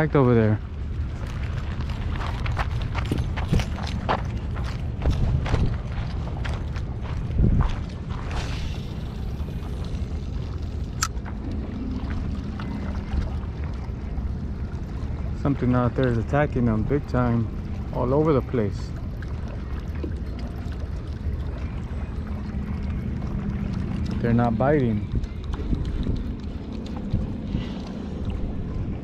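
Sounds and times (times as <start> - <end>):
wind rumbling on microphone: 0.0 - 29.0
crunching footsteps: 1.2 - 8.8
fishing rod and reel clicks: 11.0 - 11.2.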